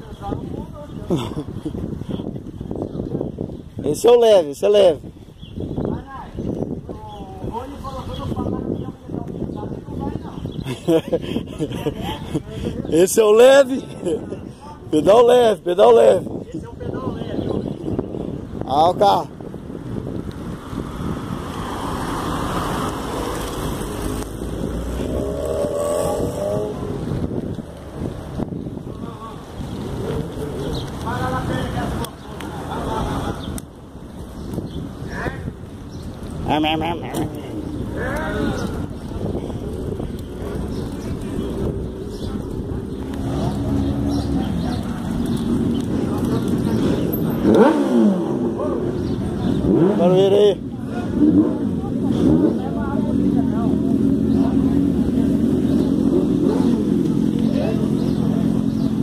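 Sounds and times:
people's voices: 0:00.0 - 0:05.1, 0:05.7 - 0:19.4, 0:21.6 - 0:59.0
road noise: 0:00.0 - 0:59.0
wind on microphone: 0:00.0 - 0:59.0
passing motor traffic: 0:18.4 - 0:59.0
engine revving: 0:21.5 - 0:27.2, 0:40.3 - 0:59.0.

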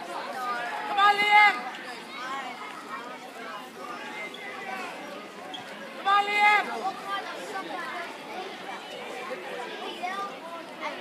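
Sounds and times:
background chatter of spectators: 0:00.0 - 0:11.0.

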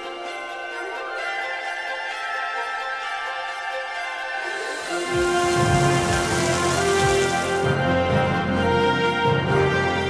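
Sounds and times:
background music: 0:00.0 - 0:10.0
seafood sizzling on griddle: 0:04.6 - 0:07.7.

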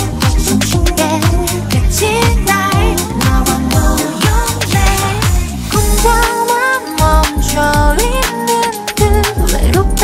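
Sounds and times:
sliding deep bass notes: 0:00.0 - 0:06.3
person singing over pop beat: 0:00.0 - 0:10.0
drum hits: 0:03.8 - 0:06.2.

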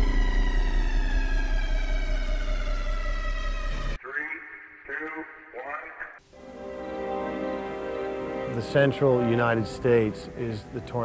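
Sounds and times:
deep bass hum: 0:00.0 - 0:04.0
electronic drone gliding down: 0:00.0 - 0:04.0.

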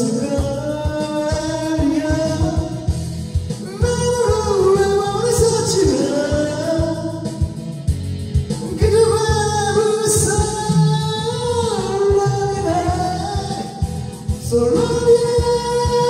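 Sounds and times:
karaoke backing track with drums: 0:00.0 - 0:16.0
man singing into a microphone: 0:00.0 - 0:16.0.

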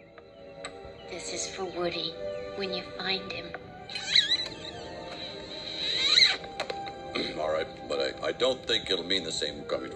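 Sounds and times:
film music through tv speaker: 0:00.0 - 0:09.9.

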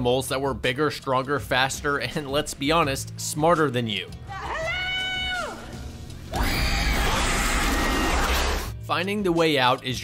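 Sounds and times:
horror film music and attack effects: 0:06.2 - 0:08.8.

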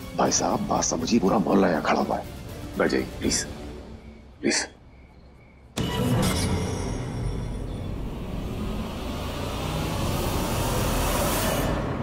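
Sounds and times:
low rumbling music drone: 0:05.8 - 0:12.0.

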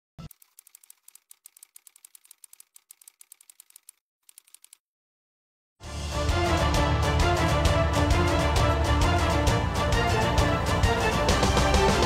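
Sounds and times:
typewriter keystroke clicks: 0:00.2 - 0:04.8.

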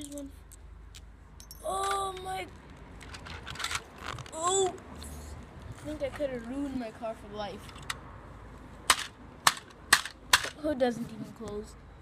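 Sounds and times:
toy car hood clicking: 0:03.0 - 0:04.4.

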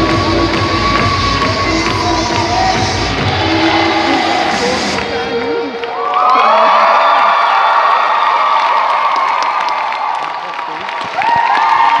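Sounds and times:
audience cheering and screaming: 0:00.0 - 0:12.0.

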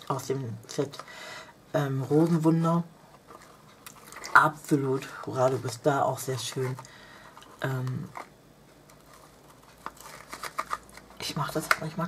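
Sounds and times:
paper box rustling: 0:02.0 - 0:12.0.

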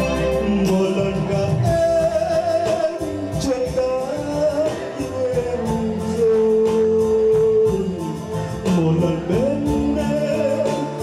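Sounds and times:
backing music: 0:00.0 - 0:11.0
man singing into microphone: 0:00.0 - 0:11.0.

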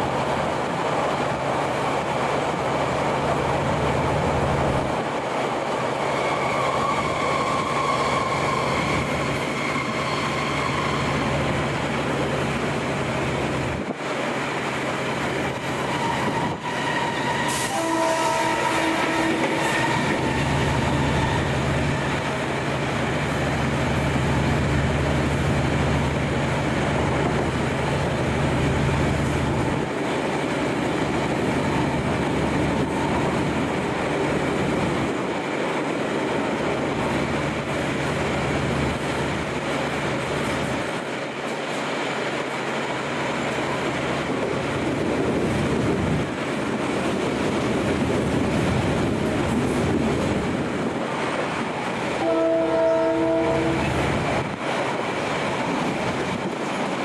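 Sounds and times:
low train rumble: 0:00.0 - 0:57.0
train wheels rushing on rails: 0:00.0 - 0:57.0.

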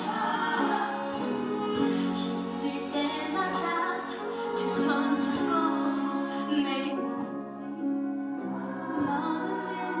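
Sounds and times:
musical theatre song with choir: 0:00.0 - 0:10.0.

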